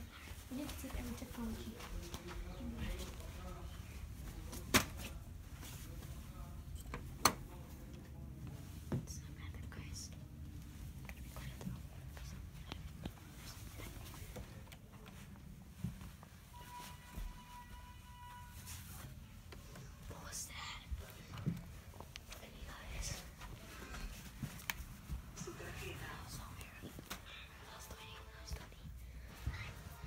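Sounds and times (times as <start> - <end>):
faint whispering: 8.1 - 15.4, 19.6 - 24.5, 25.3 - 30.0.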